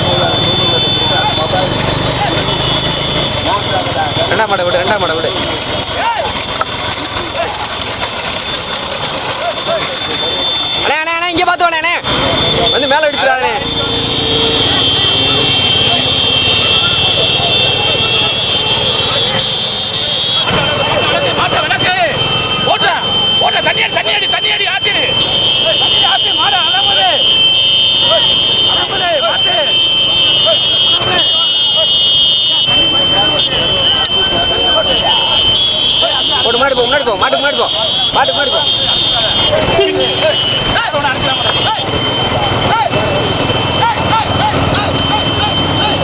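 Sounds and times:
men shouting: 0.0 - 19.6, 20.2 - 46.0
motorcycle engines: 0.0 - 46.0
steady high horn-like tone: 12.0 - 46.0.

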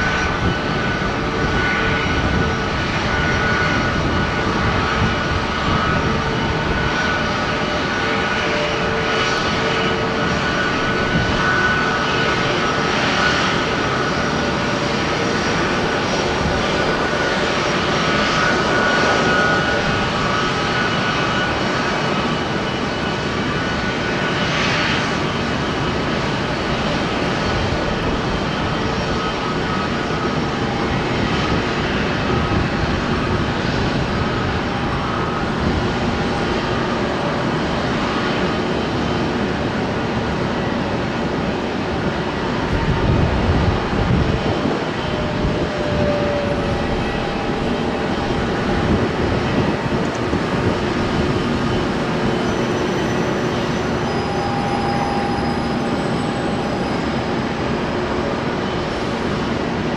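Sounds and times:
jet engines taxiing: 0.0 - 59.9.

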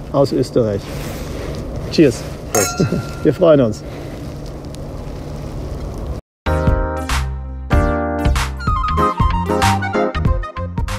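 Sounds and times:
outdoor rumble and hiss: 0.0 - 6.2.

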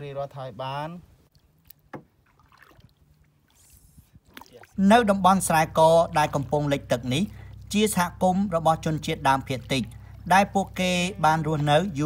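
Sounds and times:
boat knocking on water: 1.9 - 2.2.

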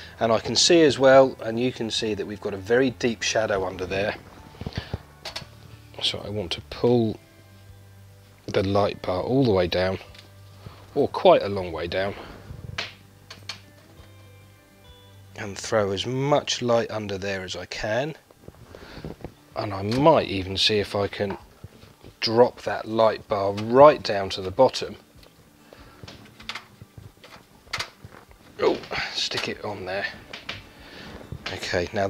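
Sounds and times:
quiet background music: 0.0 - 32.0.

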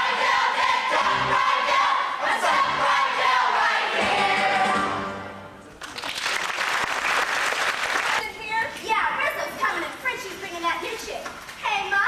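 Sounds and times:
audience applauding: 5.7 - 8.2.

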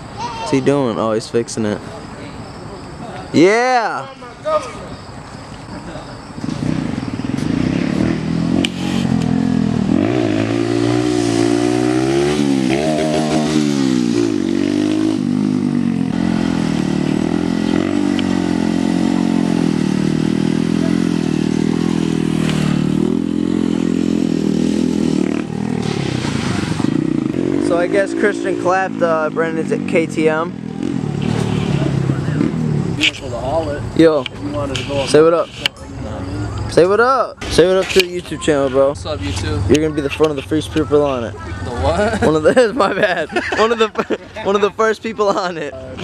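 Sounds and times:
minibike engine idling and revving: 6.2 - 46.0.

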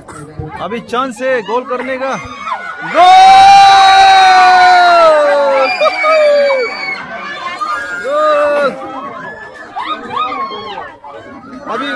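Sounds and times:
crowd cheering: 2.2 - 11.9.

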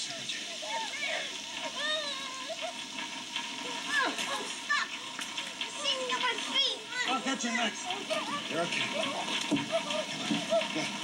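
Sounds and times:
steady rain: 0.0 - 11.0
child crying and whimpering: 9.6 - 10.7.

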